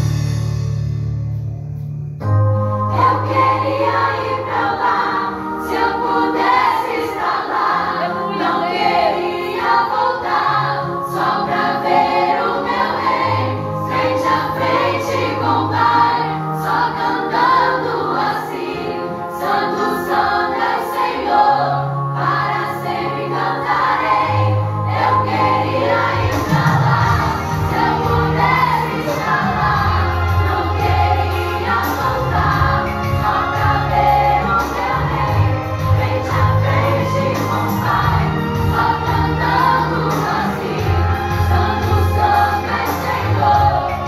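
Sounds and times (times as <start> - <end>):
keyboard bass notes: 0.0 - 44.0
girls singing worship song: 2.9 - 44.0.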